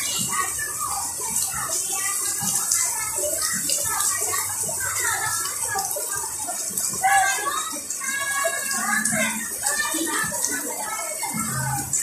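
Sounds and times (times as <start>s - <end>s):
indistinct talking: 0.0s - 12.0s.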